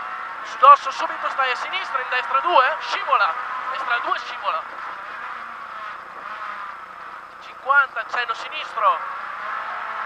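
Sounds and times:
rally car engine: 0.0s - 10.0s
road noise: 0.0s - 10.0s.

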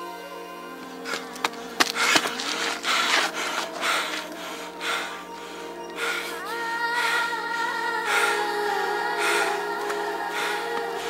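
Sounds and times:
man breathing heavily: 0.9s - 11.0s.

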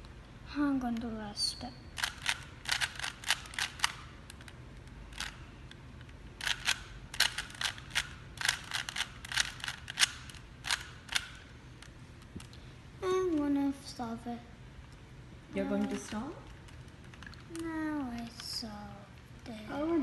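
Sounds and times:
plastic puzzle cube clicking: 2.0s - 5.4s, 6.0s - 11.9s, 15.9s - 18.6s.

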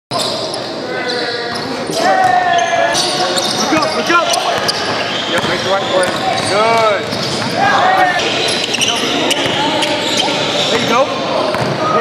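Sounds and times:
players moving on court: 0.2s - 12.0s.

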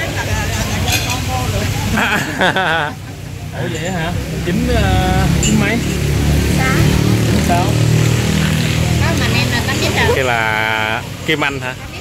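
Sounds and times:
people talking: 0.0s - 8.0s, 8.7s - 12.0s
people laughing: 1.8s - 4.2s.

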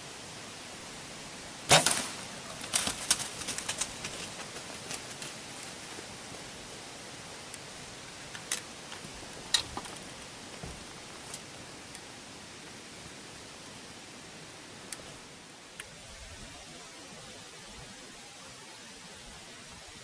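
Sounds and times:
faint steady hiss: 0.0s - 20.0s
dry leaves and twigs crackling: 1.7s - 6.8s, 7.4s - 12.2s.

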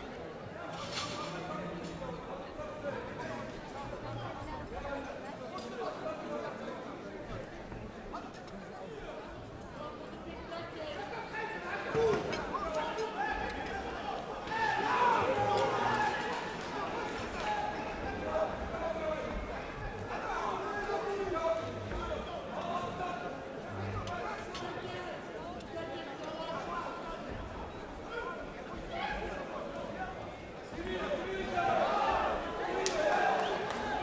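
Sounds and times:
crowd shouting and chattering: 0.0s - 34.0s.

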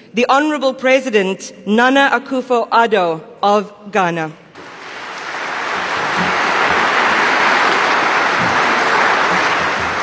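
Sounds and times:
audience applauding: 4.6s - 10.0s.

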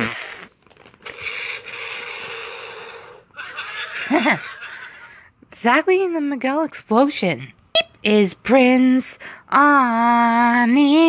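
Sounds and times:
person hissing with mouth: 0.0s - 3.3s.

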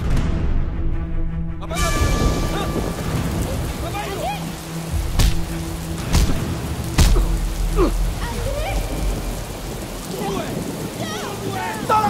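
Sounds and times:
deep rumble: 0.0s - 11.1s
rain pouring on pavement: 1.7s - 12.0s.

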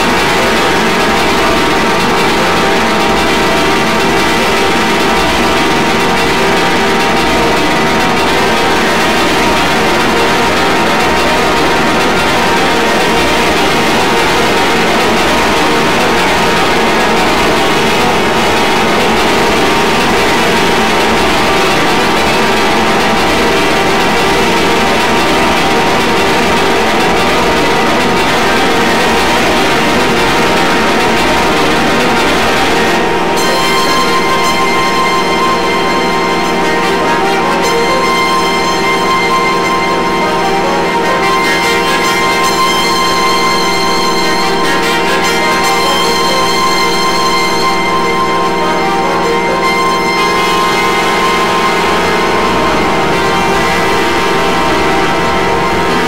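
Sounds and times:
harsh distorted noise music: 0.0s - 56.0s.

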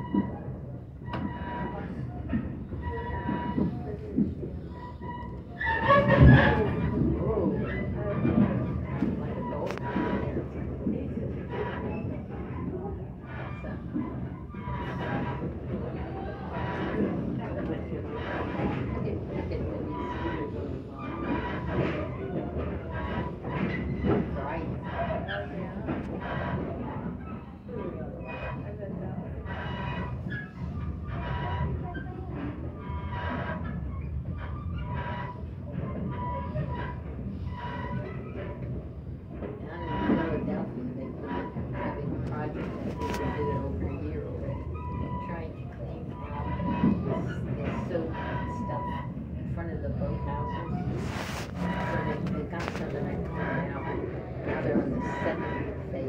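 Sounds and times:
train wheels rumbling on rails: 0.0s - 56.0s.

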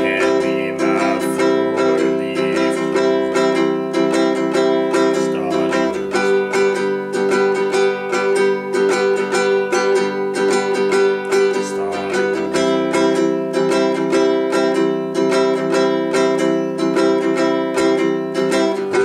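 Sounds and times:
ukulele strumming: 0.0s - 19.0s.

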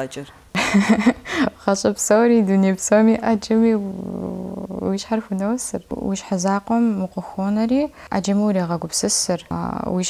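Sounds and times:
woman talking: 0.8s - 10.0s.

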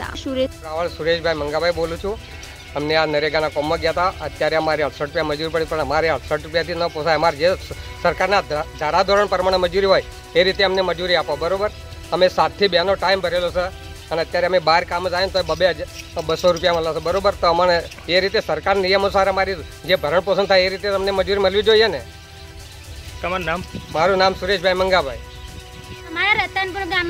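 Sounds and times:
faint background music: 0.0s - 27.0s
man speaking: 0.6s - 22.1s, 23.2s - 25.2s
man talking: 0.6s - 22.1s, 23.2s - 25.2s.

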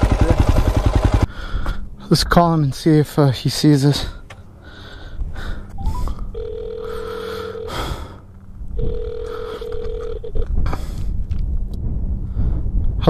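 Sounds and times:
phone ringback tone: 5.8s - 8.2s, 8.8s - 10.5s
low rumble: 10.1s - 13.0s.

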